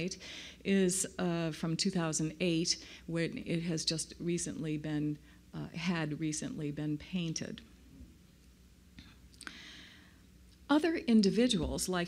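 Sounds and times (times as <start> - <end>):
soft hiss: 4.1 - 12.0.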